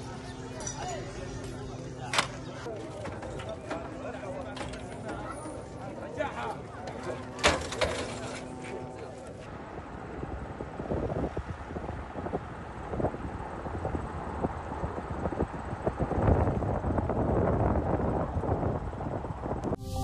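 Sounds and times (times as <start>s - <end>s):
wind buffeting microphone: 9.5s - 19.8s.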